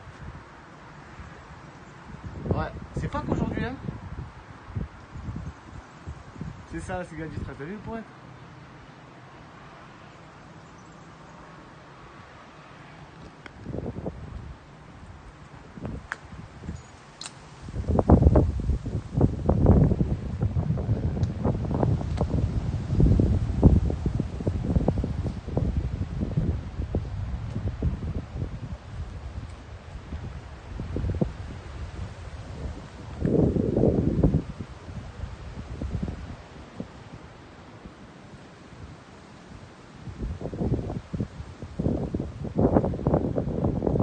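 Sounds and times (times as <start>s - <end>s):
wind buffeting microphone: 1.2s - 8.0s, 13.1s - 38.0s, 40.0s - 44.0s.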